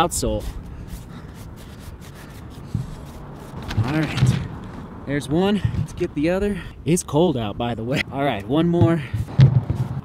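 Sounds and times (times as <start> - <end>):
outdoor background noise: 0.0 - 10.0
wet wipe scrubbing rubber sole: 0.1 - 4.2.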